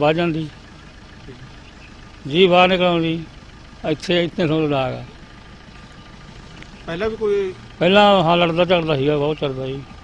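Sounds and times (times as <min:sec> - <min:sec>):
man speaking: 0:03.9 - 0:05.2, 0:06.9 - 0:09.9.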